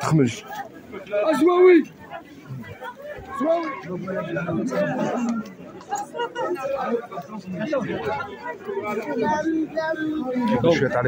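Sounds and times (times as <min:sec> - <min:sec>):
people talking over one another: 0:00.0 - 0:11.0.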